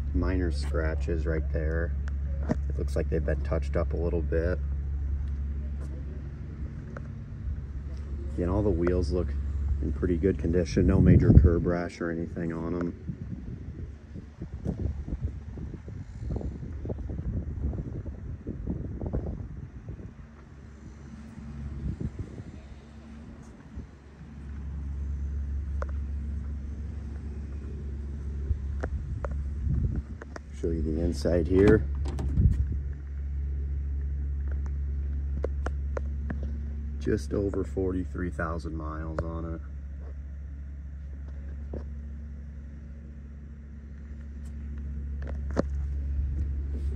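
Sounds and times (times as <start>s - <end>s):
wind buffeting microphone: 0.0s - 33.5s
steady low hum: 0.0s - 46.9s
car door opening: 31.1s - 32.7s.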